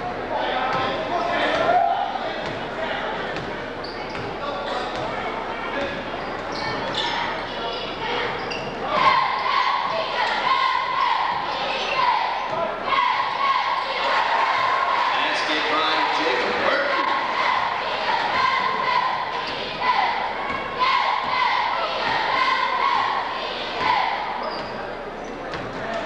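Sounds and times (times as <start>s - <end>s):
crowd voices echoing: 0.0s - 26.0s
people shouting: 8.9s - 24.4s.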